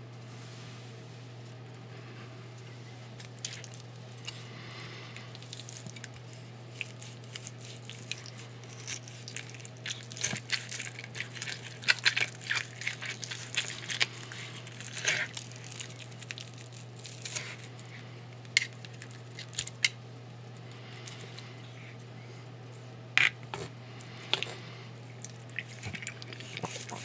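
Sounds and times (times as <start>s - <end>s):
bacon crackling and tearing: 3.1s - 21.5s, 23.2s - 27.0s.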